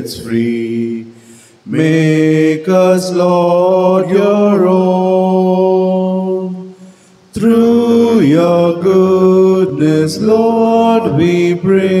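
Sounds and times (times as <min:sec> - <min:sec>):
hymn singing: 0:00.0 - 0:12.0.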